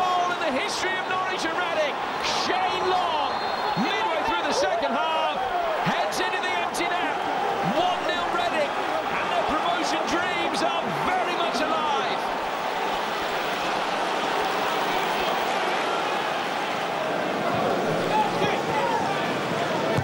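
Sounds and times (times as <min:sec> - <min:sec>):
crowd roar: 0:00.0 - 0:20.0
crowd shouting and singing: 0:00.0 - 0:20.0.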